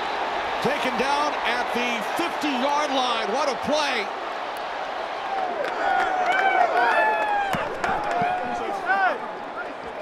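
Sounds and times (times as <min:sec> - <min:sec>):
stadium crowd noise: 0:00.0 - 0:10.0
men shouting and whooping: 0:05.2 - 0:09.2.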